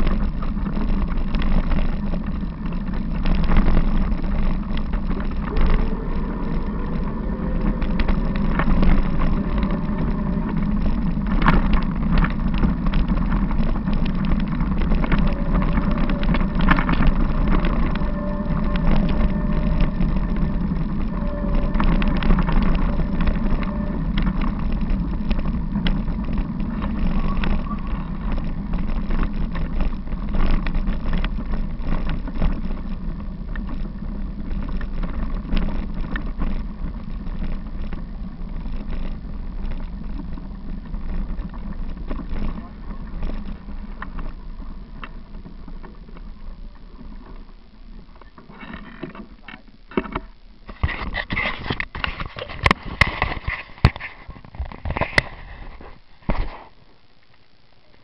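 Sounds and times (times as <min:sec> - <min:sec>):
wind on microphone: 0:00.0 - 0:56.8
bicycle rattling over bumps: 0:00.0 - 0:58.0
bicycle tyres on gravel: 0:00.0 - 0:58.0.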